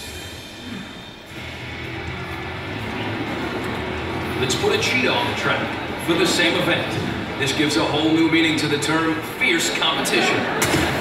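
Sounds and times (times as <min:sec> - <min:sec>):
soundtrack music over loudspeakers: 0:00.0 - 0:11.0.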